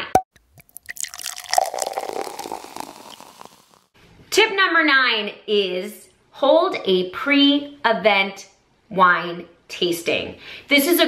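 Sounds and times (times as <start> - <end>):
cork popping from bottle: 0.0 - 3.9
wine pouring into glass: 0.4 - 3.9.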